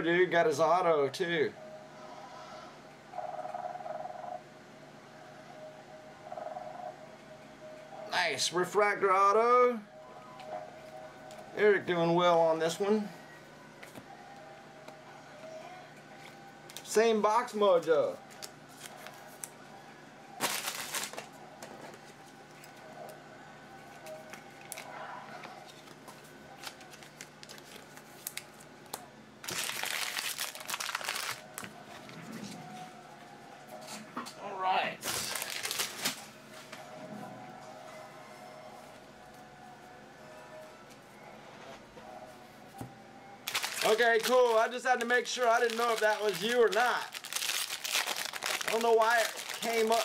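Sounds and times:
foil wrappers crinkling and tearing: 18.2s - 19.6s, 20.4s - 21.4s, 24.0s - 24.9s, 25.6s - 31.8s, 35.0s - 36.3s, 43.4s - 50.0s.

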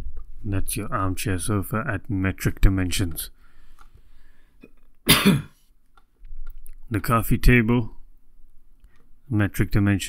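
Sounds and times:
person coughing: 5.1s - 5.6s.

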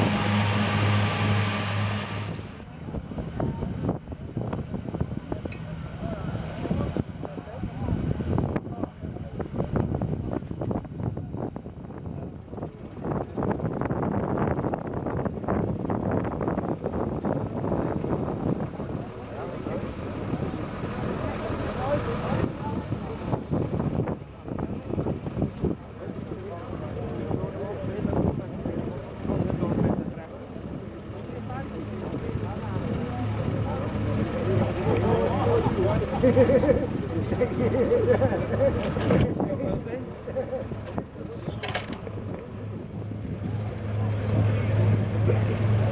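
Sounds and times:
onlookers talking: 0.0s - 45.9s
tractor engines running: 0.0s - 45.9s
hay rake hydraulics folding: 40.9s - 42.2s.

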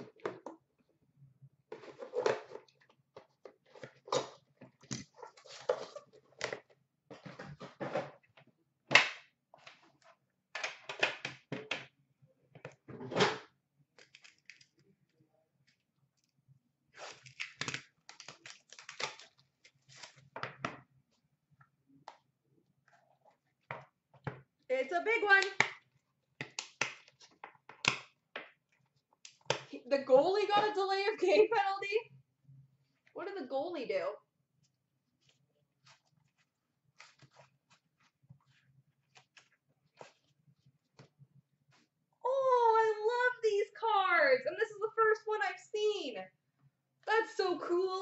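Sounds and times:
plastic wrapping crinkling: 17.0s - 20.3s.

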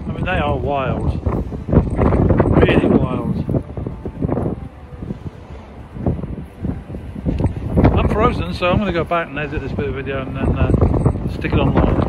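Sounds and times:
gusty wind buffeting microphone: 0.0s - 12.0s
storm sea breaking on shore: 0.0s - 12.0s.

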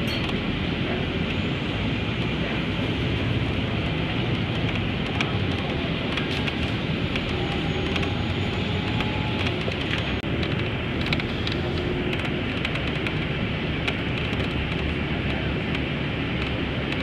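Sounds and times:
moving vehicle rumbling: 0.0s - 17.0s.

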